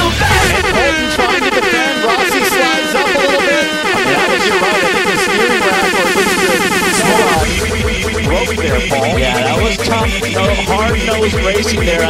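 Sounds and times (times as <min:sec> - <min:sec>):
racing car engine revving: 0:00.0 - 0:12.0.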